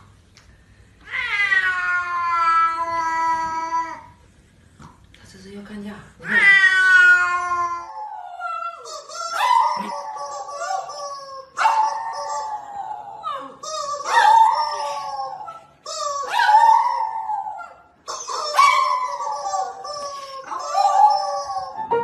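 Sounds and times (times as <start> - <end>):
dog howling: 6.2 - 22.0.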